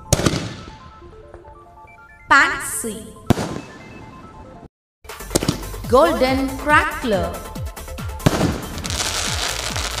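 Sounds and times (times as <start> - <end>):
dense firework crackle: 8.3 - 10.0.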